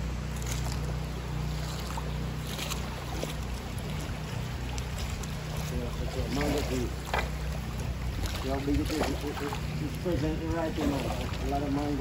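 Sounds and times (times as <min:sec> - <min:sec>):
river water rushing: 0:00.0 - 0:12.0.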